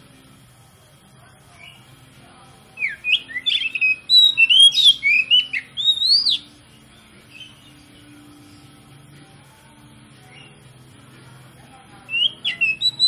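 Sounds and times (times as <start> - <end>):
bird singing whistled notes: 2.8 - 6.6, 7.3 - 8.0, 10.2 - 10.7, 12.0 - 13.0.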